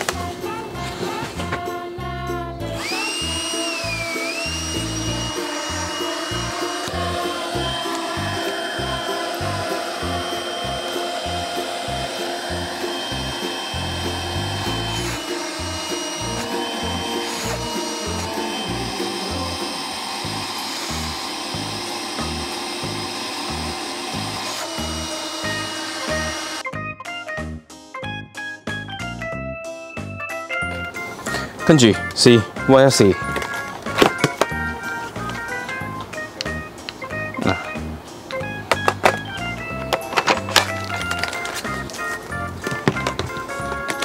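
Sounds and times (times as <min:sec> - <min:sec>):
background music: 0:00.0 - 0:44.0
vacuum motor whining: 0:02.6 - 0:26.6, 0:38.4 - 0:44.0.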